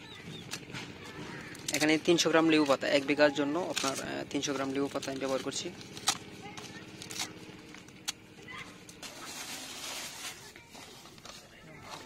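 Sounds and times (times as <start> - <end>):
leaves rustling and crackling: 1.6 - 7.5, 9.0 - 12.0.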